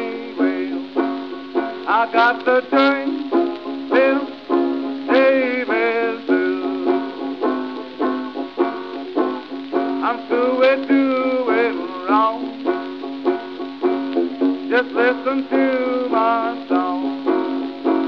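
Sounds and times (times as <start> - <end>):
banjo playing blues: 0.0 - 18.0.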